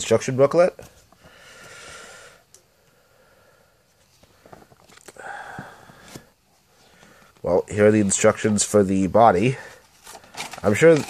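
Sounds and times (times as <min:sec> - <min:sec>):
breaths through the nose: 0:01.2 - 0:07.4.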